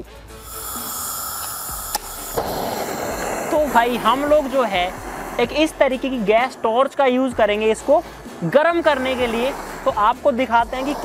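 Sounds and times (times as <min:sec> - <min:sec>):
gas hissing from torch nozzle: 0:00.3 - 0:11.0
torch flame rushing: 0:00.4 - 0:11.0
torch click: 0:00.5 - 0:04.4.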